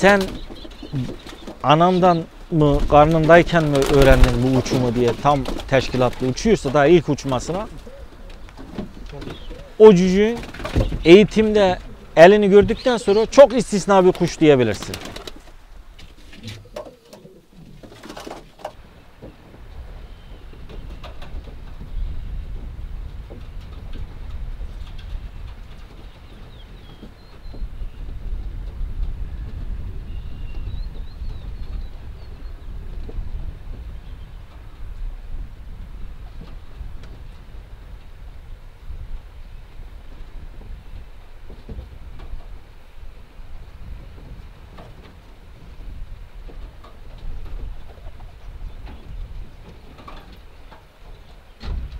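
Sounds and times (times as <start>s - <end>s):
pigeons cooing: 0.0s - 2.5s, 3.1s - 11.0s, 16.1s - 18.6s.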